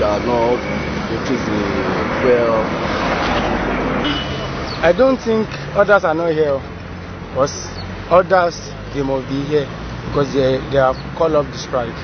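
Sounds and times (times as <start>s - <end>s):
road traffic rushing: 0.0s - 12.0s.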